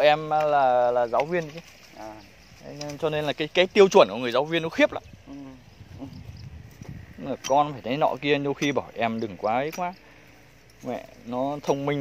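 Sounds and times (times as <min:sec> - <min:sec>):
person murmuring mm: 0:05.2 - 0:06.4.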